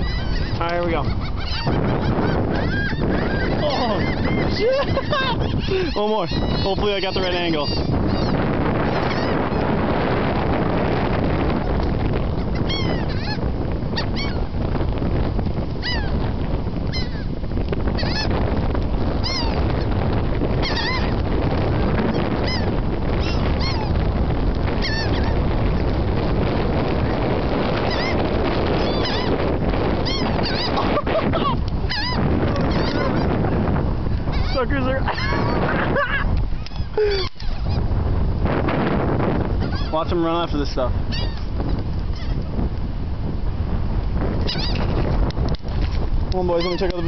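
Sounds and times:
flock of birds calling: 0.0 - 9.8, 11.5 - 14.5, 15.8 - 16.2, 16.9 - 17.3, 17.9 - 18.4, 19.2 - 21.2, 22.0 - 24.0, 24.6 - 25.9, 27.0 - 37.9, 39.6 - 42.4, 44.4 - 45.0, 46.4 - 47.0.

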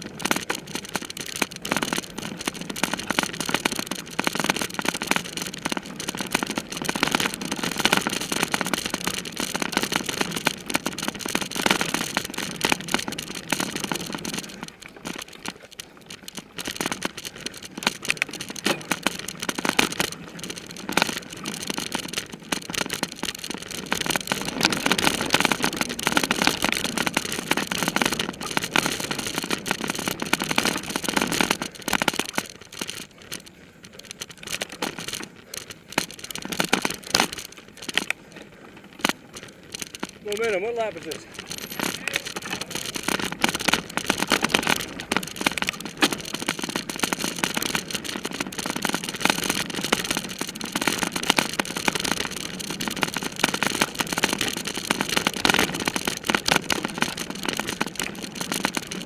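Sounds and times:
bike clattering over bumps: 0.0 - 59.0
tyres on dirt: 0.0 - 59.0.

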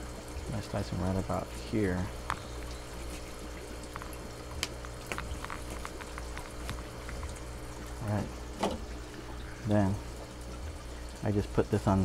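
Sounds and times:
low steady hum: 0.0 - 12.0
running water: 0.0 - 12.0.

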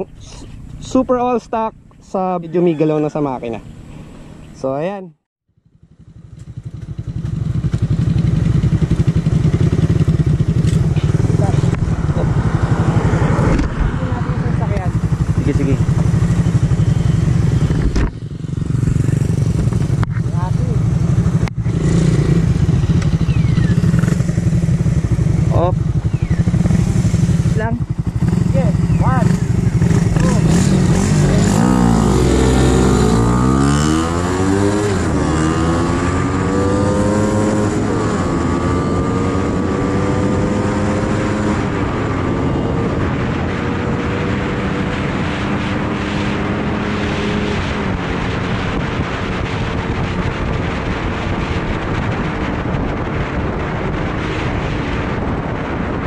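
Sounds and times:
motorcycle accelerating: 0.0 - 56.0
motorcycle engine running: 5.5 - 56.0.

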